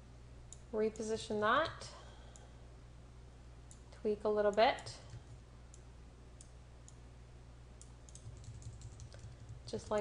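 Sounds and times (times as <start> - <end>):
low steady room hum: 0.0 - 10.0
computer mouse clicks: 7.8 - 10.0.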